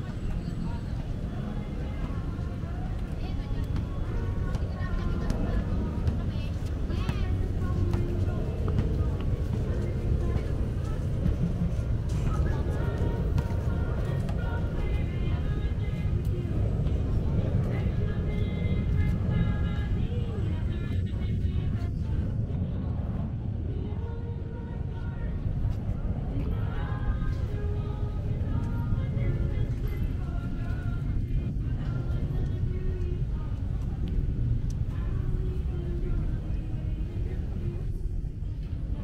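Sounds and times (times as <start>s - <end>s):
low traffic rumble: 0.0s - 39.0s
people talking: 0.0s - 39.0s
wind: 0.0s - 39.0s.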